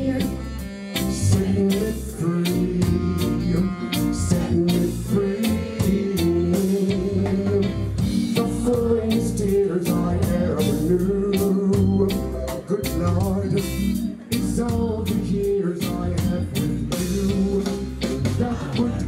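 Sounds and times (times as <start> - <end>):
man singing into microphone: 0.0 - 19.0
reggae band playing: 0.0 - 19.0.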